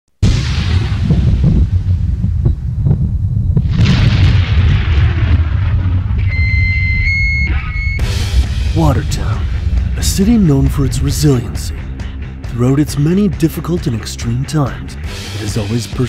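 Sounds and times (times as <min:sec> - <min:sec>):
deep rumbling boom: 0:00.2 - 0:14.0
low rumble: 0:00.2 - 0:15.1
high-pitched electronic tone: 0:06.2 - 0:08.2.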